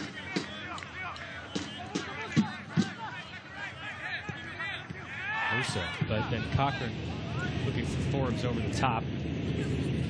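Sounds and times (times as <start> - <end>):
players and spectators shouting: 0.0 - 8.7.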